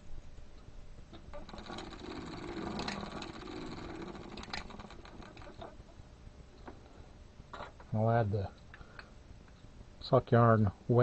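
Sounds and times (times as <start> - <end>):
low mechanical whir: 0.0 - 8.0
sock machine clicking: 1.1 - 5.8.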